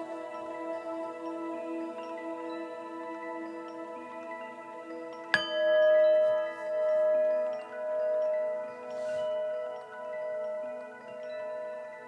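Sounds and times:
soft ambient music with mallets: 0:00.0 - 0:12.0
singing bowl ringing: 0:03.5 - 0:12.0.

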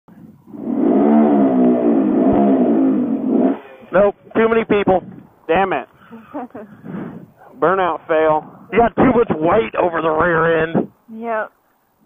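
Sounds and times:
motorcycle engine revving hard: 0:00.4 - 0:05.1.

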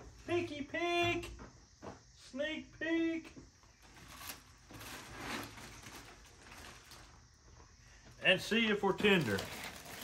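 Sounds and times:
aluminium foil crinkling: 0:03.8 - 0:07.1, 0:09.0 - 0:10.0.

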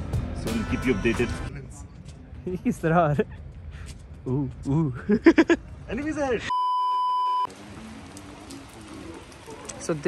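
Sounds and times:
censor bleep tone: 0:06.5 - 0:07.5.

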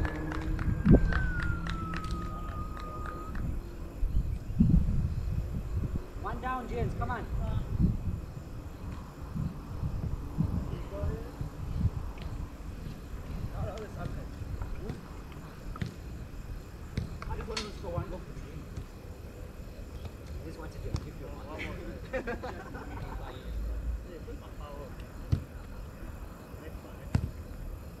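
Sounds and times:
distant players shouting: 0:00.0 - 0:03.9
football being kicked: 0:14.0 - 0:14.2, 0:14.8 - 0:15.1, 0:16.9 - 0:17.3, 0:25.3 - 0:25.6, 0:27.1 - 0:27.4.

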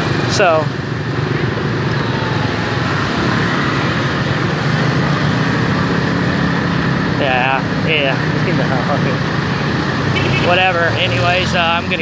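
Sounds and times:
motorbike engines and road rumble: 0:00.0 - 0:12.0.

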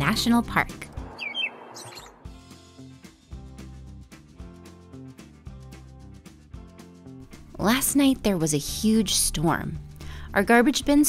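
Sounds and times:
soft background music: 0:00.0 - 0:11.0
high bird chirps: 0:01.1 - 0:02.2.

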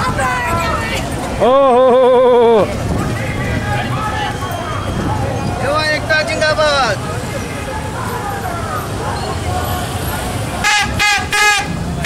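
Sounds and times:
crowd shouting and chatter: 0:00.0 - 0:12.0
plastic toy trumpet blasts: 0:10.6 - 0:11.7.

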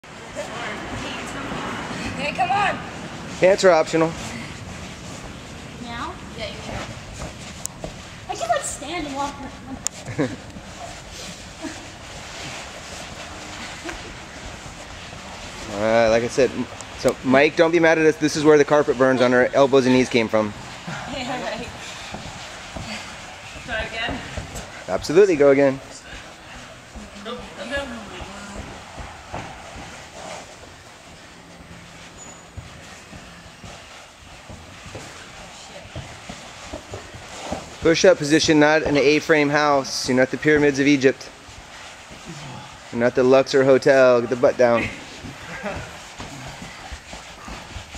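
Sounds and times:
person laughing: 0:44.7 - 0:46.0.

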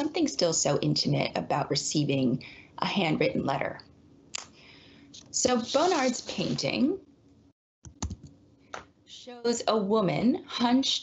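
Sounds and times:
computer keys clicking: 0:07.9 - 0:08.3.

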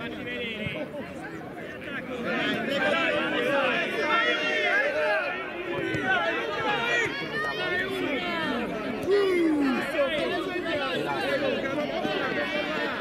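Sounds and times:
people calling out and chattering: 0:00.0 - 0:13.0.

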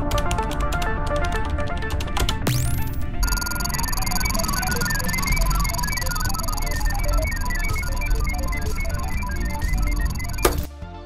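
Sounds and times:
high electronic whine: 0:03.2 - 0:10.6
short electronic bleeps: 0:03.2 - 0:10.6.

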